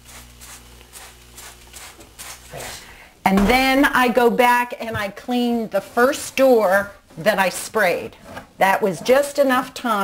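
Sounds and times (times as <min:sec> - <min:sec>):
spray bottle spritzes: 0:00.0 - 0:02.5.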